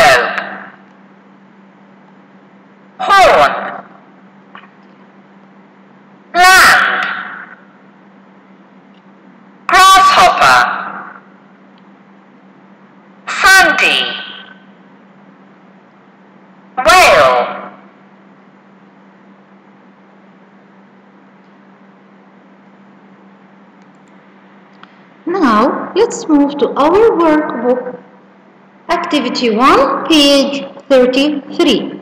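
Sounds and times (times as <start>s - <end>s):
faint low hum and hiss: 0.0s - 32.0s.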